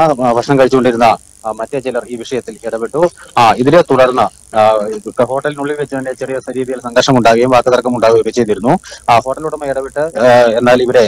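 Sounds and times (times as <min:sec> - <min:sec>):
person talking: 0:00.0 - 0:11.0.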